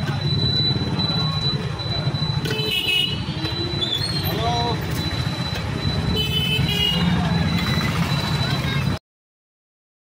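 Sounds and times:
traffic rumble: 0:00.0 - 0:09.0.

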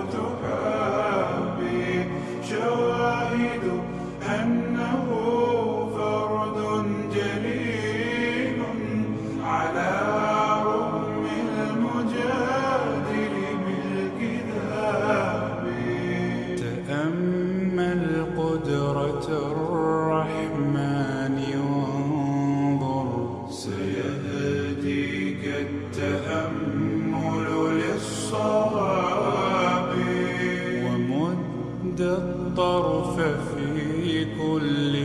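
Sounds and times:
male voices chanting with reverb: 0:00.0 - 0:35.0.

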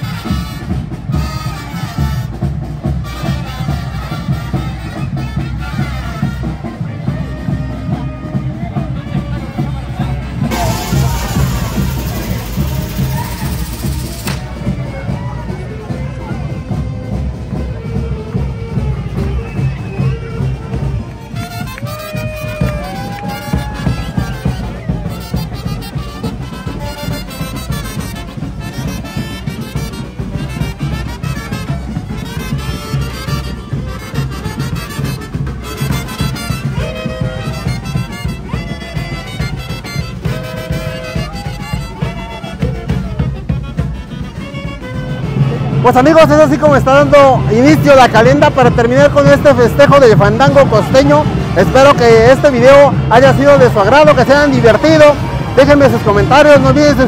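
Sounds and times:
brass band playing: 0:00.0 - 0:57.0.

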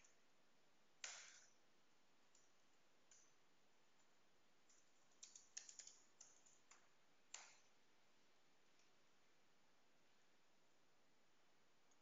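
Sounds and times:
computer keyboard keystrokes: 0:04.7 - 0:07.6.

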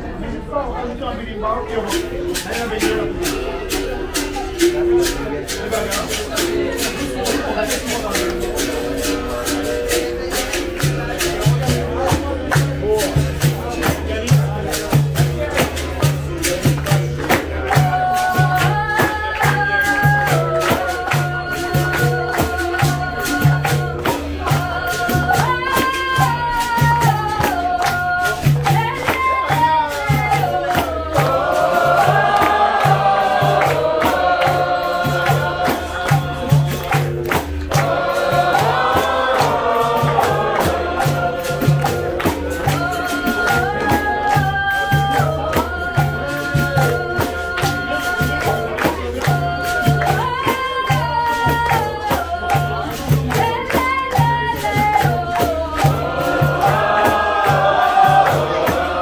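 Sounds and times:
berimbaus playing: 0:01.7 - 0:50.4, 0:54.6 - 0:59.0
hand drum beating: 0:01.9 - 0:59.0
group singing together: 0:02.3 - 0:59.0
hand clapping: 0:02.3 - 0:59.0.

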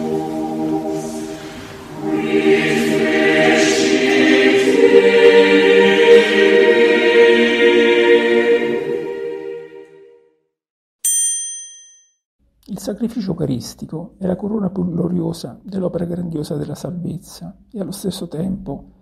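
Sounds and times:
choir singing sustained chords: 0:00.0 - 0:10.3
bright chime: 0:11.1 - 0:12.2.

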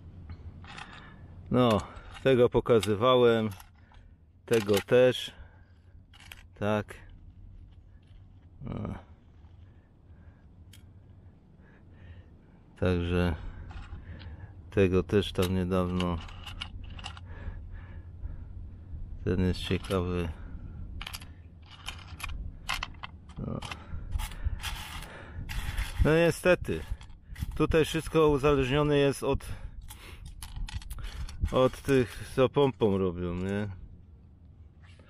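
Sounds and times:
faint low rumble: 0:03.5 - 0:35.0
amber pieces clicking: 0:29.9 - 0:31.8.

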